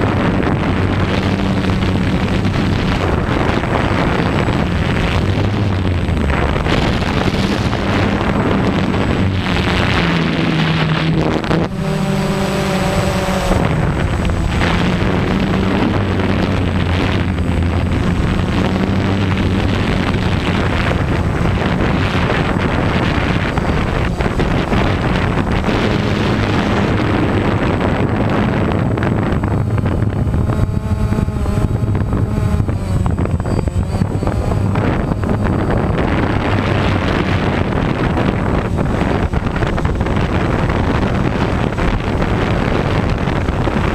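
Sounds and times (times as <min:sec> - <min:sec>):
drone motors droning: 0:00.0 - 0:43.9
thin high whine: 0:00.0 - 0:43.9
wind buffeting microphone: 0:00.0 - 0:43.9.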